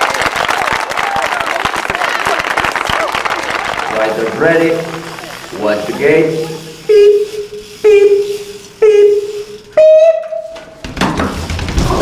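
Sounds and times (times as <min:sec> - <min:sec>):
crowd clapping: 0:00.0 - 0:06.0
people cheering: 0:00.0 - 0:06.7
voices calling out: 0:00.4 - 0:09.9.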